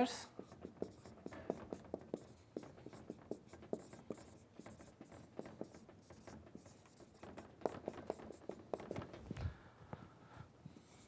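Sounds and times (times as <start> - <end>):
marker writing on whiteboard: 0.0 - 9.3.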